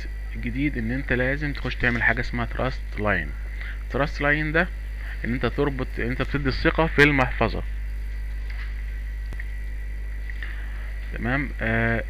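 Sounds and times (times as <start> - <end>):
faint high whine: 0.0 - 12.0
low electrical hum: 0.0 - 12.0.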